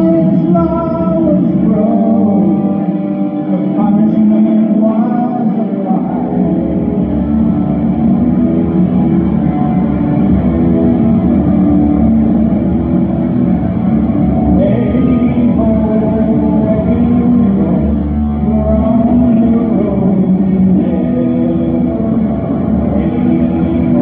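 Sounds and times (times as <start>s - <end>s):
electric guitar through sound system: 0.0s - 24.0s.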